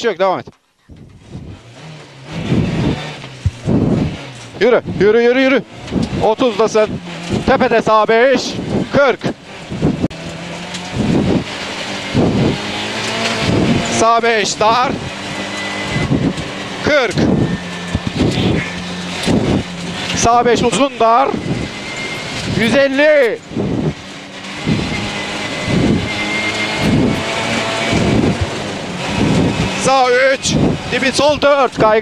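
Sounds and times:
gravel rattling against underbody: 0:00.3 - 0:26.2, 0:26.9 - 0:32.0
car engine running: 0:00.8 - 0:32.0.

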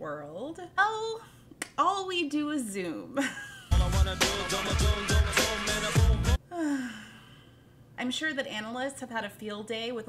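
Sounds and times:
music with heavy beat: 0:03.7 - 0:06.4
long falling sigh: 0:06.5 - 0:07.4.

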